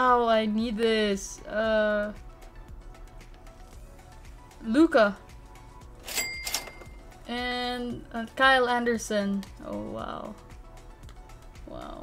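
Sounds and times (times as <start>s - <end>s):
soft background music: 0.0s - 12.0s
thin high ring: 6.0s - 7.1s.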